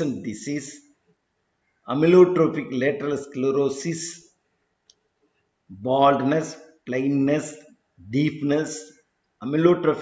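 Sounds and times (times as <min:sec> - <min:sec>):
man lecturing: 0:00.0 - 0:01.0, 0:01.8 - 0:04.4, 0:05.6 - 0:10.0.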